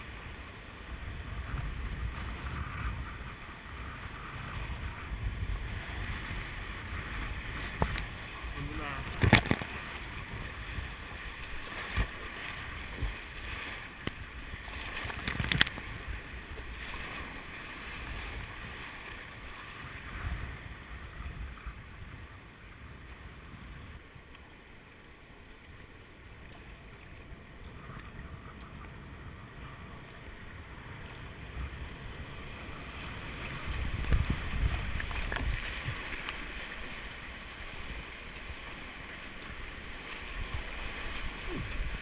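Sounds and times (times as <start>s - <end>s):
paddle splashes: 0.0s - 23.2s, 23.9s - 42.0s
wind buffeting microphone: 0.0s - 24.1s, 27.0s - 36.2s, 40.2s - 42.0s
rushing river water: 0.0s - 42.0s.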